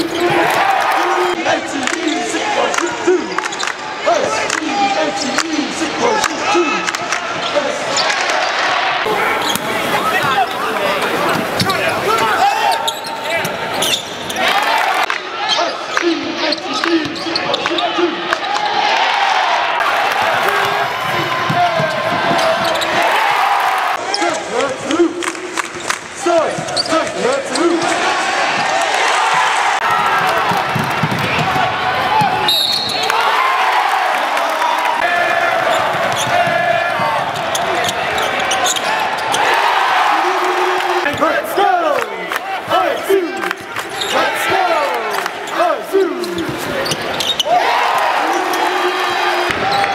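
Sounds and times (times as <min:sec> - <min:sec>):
indistinct voices in arena: 0:00.0 - 0:49.9.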